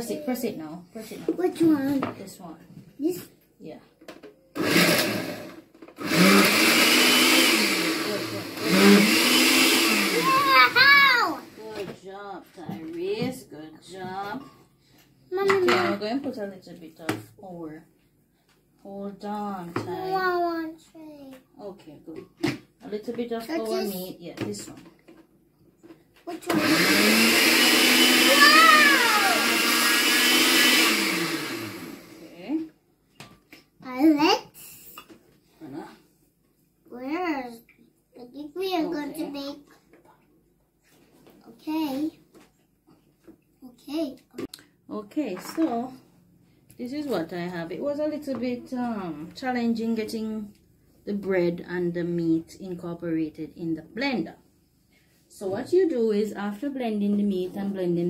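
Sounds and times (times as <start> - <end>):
blender grinding: 4.6 - 11.8, 26.3 - 32.4.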